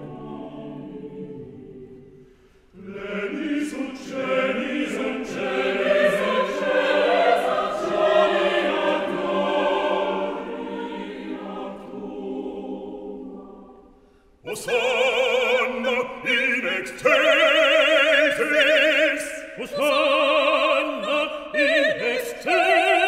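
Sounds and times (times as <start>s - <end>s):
choir singing a cappella: 0.0s - 23.0s.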